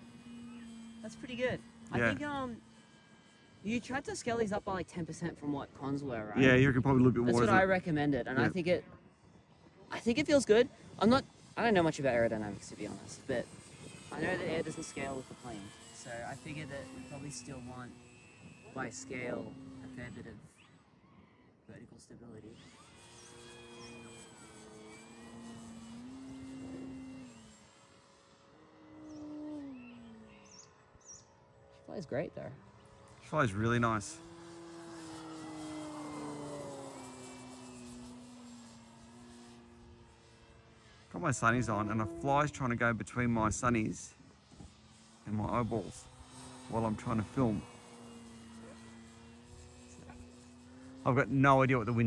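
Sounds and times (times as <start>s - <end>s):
model plane motor droning: 0.0s - 52.0s.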